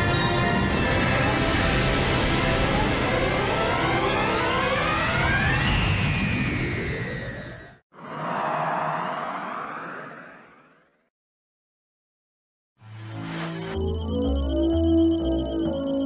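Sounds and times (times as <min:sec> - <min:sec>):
cluster of tones sliding upward: 0:03.4 - 0:11.0
whooshing transition effect: 0:08.0 - 0:11.0.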